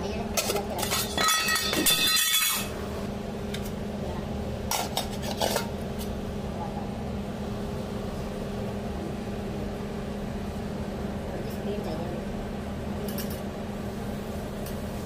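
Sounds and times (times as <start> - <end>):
kitchen equipment hum: 0.0 - 15.0
metal kitchenware clattering: 0.4 - 2.8, 4.7 - 6.1.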